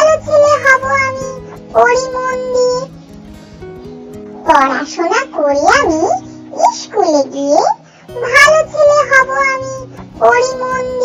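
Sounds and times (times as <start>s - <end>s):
person singing a children's rhyme: 0.0s - 3.0s, 4.5s - 11.0s
light musical backing: 0.0s - 11.0s.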